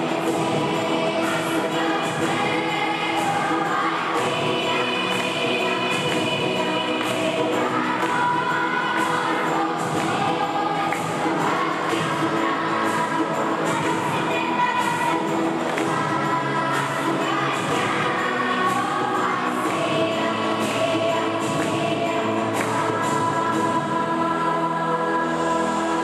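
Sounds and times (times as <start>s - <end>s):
accompaniment with light beat: 0.0s - 24.1s
children's choir singing: 0.0s - 26.0s.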